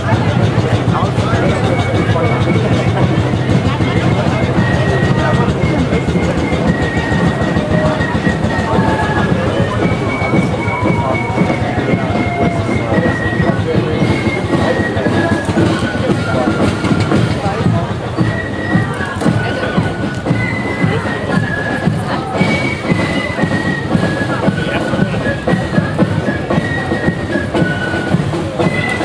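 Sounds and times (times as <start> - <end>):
crowd chatter: 0.0 - 29.0
low street rumble: 0.0 - 29.0.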